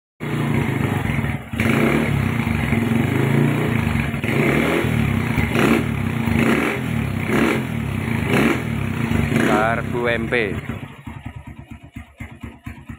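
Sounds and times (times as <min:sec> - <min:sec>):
motorcycle engine idling and revving: 0:00.2 - 0:12.9.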